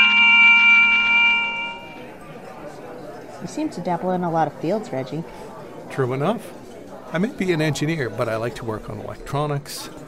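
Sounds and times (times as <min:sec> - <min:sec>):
organ chord: 0:00.0 - 0:02.1.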